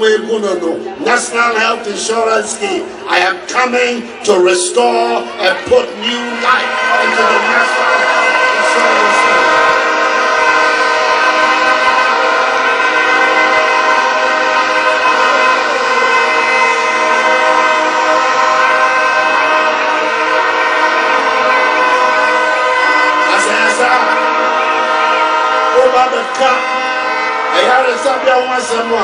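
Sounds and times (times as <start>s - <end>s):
crowd blowing horns: 0.0s - 29.0s.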